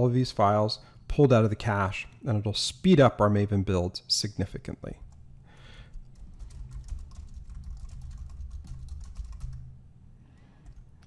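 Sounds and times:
faint low hum: 0:00.0 - 0:11.0
typing on computer keyboard: 0:05.9 - 0:09.7, 0:10.6 - 0:11.0.

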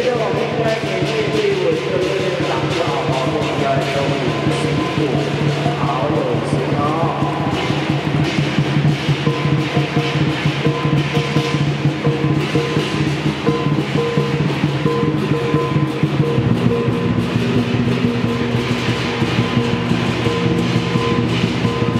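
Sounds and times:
barrel drums beaten fast: 0:00.0 - 0:21.9
hand cymbals clashing: 0:00.0 - 0:21.9
gong ringing: 0:02.0 - 0:21.9.

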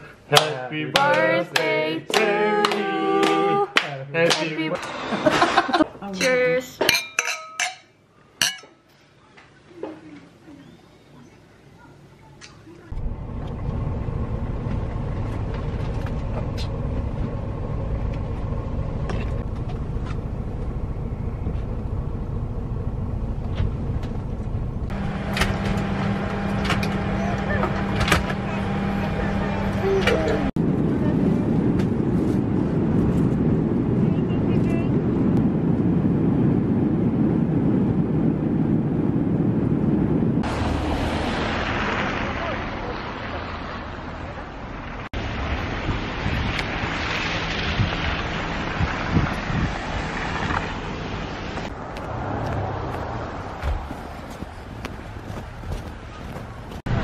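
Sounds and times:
bus engine and road rumble: 0:00.0 - 0:06.9, 0:09.1 - 0:57.0
rushing cabin noise: 0:12.9 - 0:41.2.

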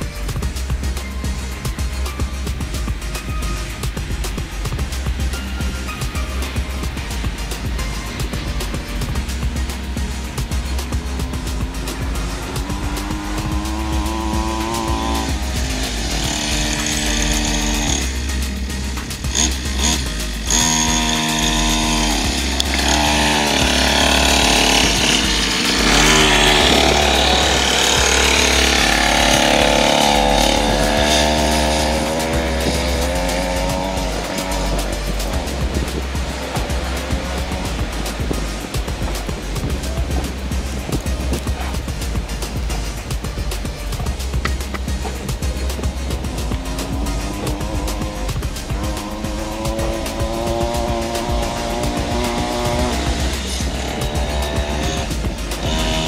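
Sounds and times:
background music with bass: 0:00.0 - 0:56.0
dirt bike engine revving: 0:00.0 - 0:56.0.

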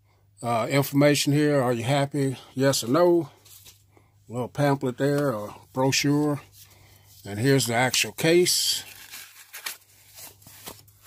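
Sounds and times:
foam sheet rustling and crinkling: 0:08.6 - 0:11.0.

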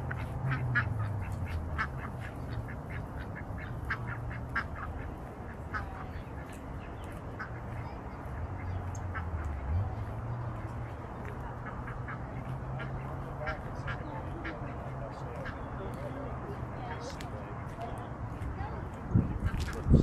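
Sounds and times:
ducks quacking: 0:00.0 - 0:16.1.

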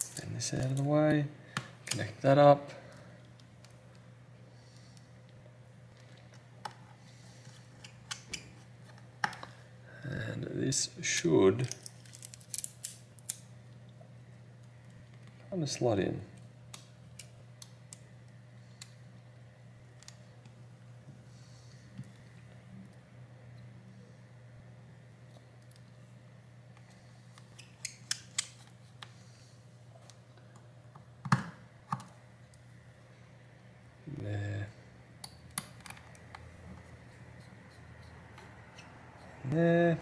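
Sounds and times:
low steady hum: 0:00.0 - 0:40.0.

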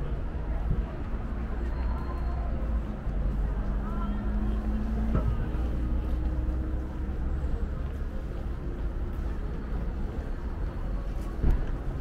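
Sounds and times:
city traffic rumble: 0:00.0 - 0:12.0
vehicle engine humming: 0:00.0 - 0:12.0.

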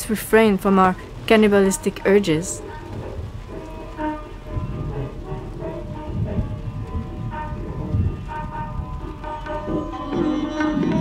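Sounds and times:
rain: 0:00.0 - 0:11.0
thunder rumbling: 0:00.0 - 0:11.0
soft music with held notes: 0:00.5 - 0:11.0.

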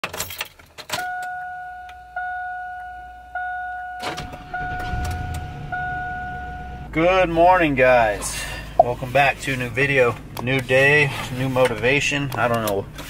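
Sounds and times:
dashboard warning chime: 0:01.0 - 0:07.0
truck engine idling: 0:03.4 - 0:11.2.

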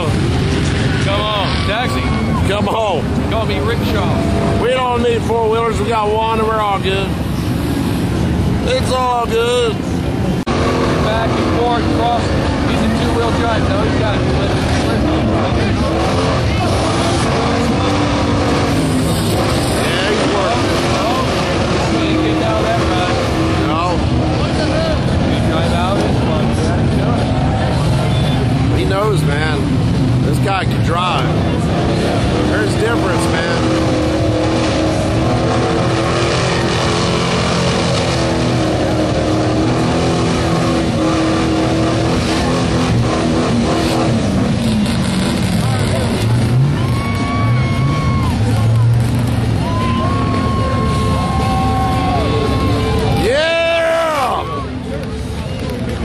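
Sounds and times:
crowd voices: 0:00.0 - 0:56.0
truck engines revving: 0:00.0 - 0:56.0.

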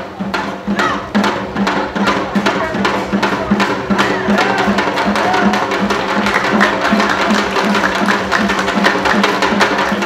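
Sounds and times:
hourglass drums struck with sticks: 0:00.0 - 0:10.0.

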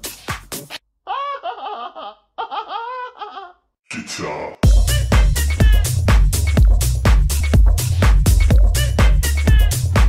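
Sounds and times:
filtered sample of person laughing: 0:01.0 - 0:03.7, 0:04.8 - 0:06.0, 0:08.8 - 0:09.9
house music: 0:04.6 - 0:10.0.

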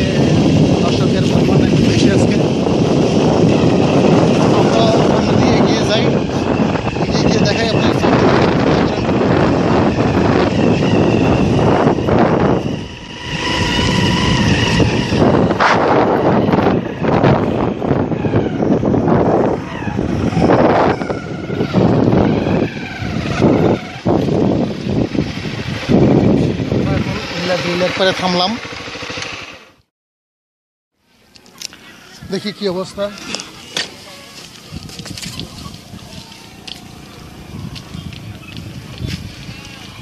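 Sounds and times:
wind rumble on microphone: 0:00.0 - 0:28.7, 0:32.1 - 0:40.0
motorcycle engine: 0:00.0 - 0:29.9, 0:31.4 - 0:40.0.

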